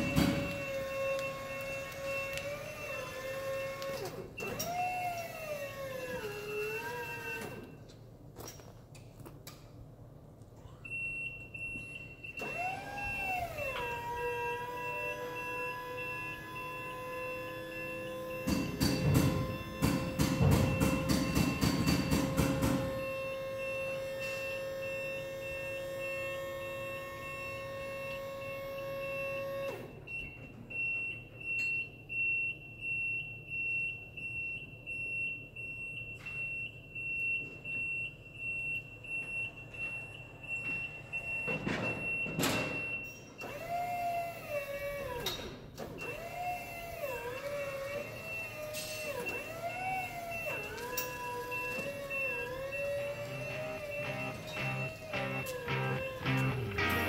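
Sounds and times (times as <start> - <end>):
hydraulic pump motor whine: 0.0 - 7.6, 12.4 - 21.1, 46.0 - 57.0
high steady alarm tone: 51.6 - 57.0.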